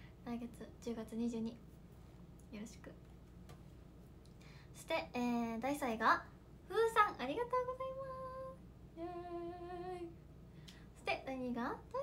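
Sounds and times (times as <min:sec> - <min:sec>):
young woman singing long notes: 0:07.8 - 0:10.2.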